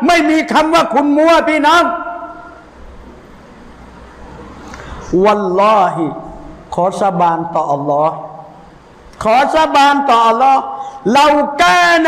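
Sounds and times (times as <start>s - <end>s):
man speaking: 0.0s - 2.6s, 5.1s - 8.6s, 9.2s - 12.0s.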